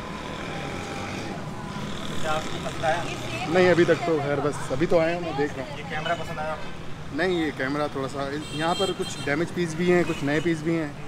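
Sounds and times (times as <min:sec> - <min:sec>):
steady background din: 0:00.0 - 0:11.0.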